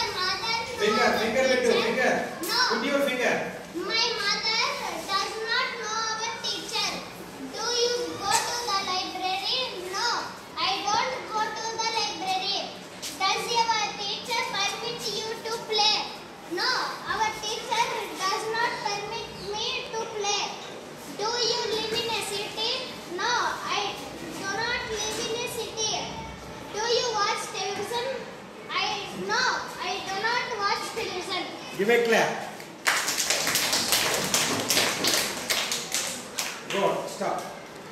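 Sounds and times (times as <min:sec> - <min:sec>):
children reading aloud: 0:00.0 - 0:37.9
children clapping: 0:32.7 - 0:36.9.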